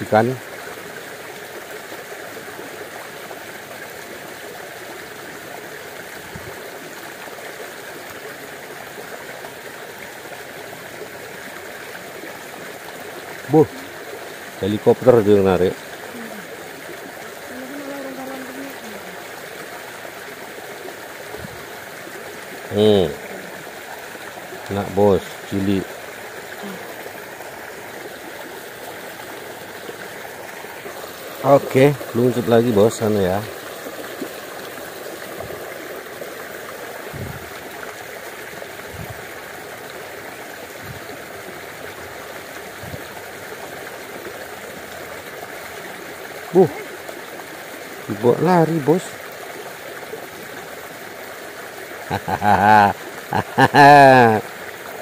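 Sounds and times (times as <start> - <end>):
creek water flowing: 0.0 - 55.0.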